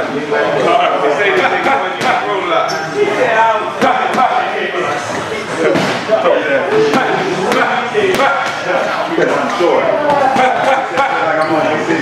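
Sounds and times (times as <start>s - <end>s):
voices in a gym: 0.0s - 12.0s.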